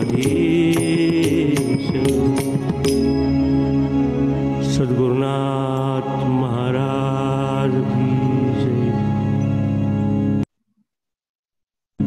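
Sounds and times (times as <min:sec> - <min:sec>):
person singing: 0:00.0 - 0:03.3, 0:04.5 - 0:09.4
harmonium drone: 0:00.0 - 0:10.5.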